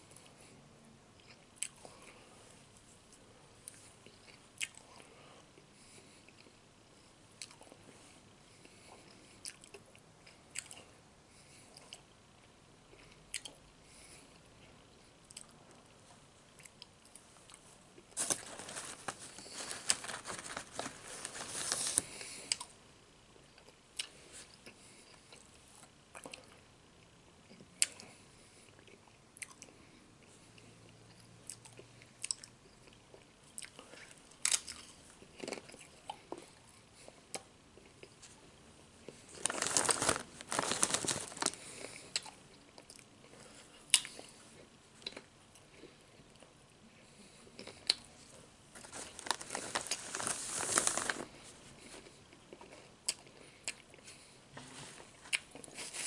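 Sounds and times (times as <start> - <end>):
crunching and chewing chips: 16.5 - 22.7, 27.5 - 38.4, 39.0 - 54.4, 55.1 - 56.0
chip bag crinkling: 18.2 - 22.7, 39.1 - 42.0, 48.8 - 51.4.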